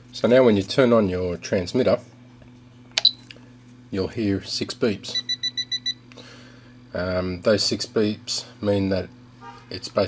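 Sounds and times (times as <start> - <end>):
power switch click: 3.0 - 3.2.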